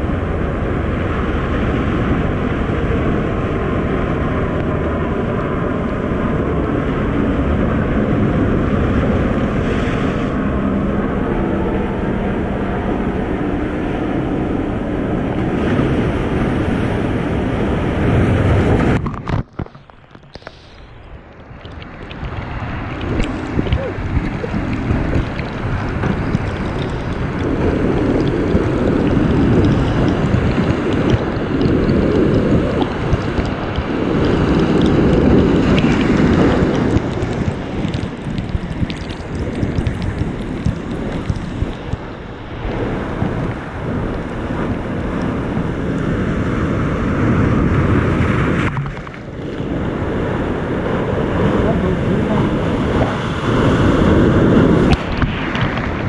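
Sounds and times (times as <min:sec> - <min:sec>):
wind buffeting microphone: 0:00.0 - 0:56.0
surf breaking against rocks: 0:15.4 - 0:56.0.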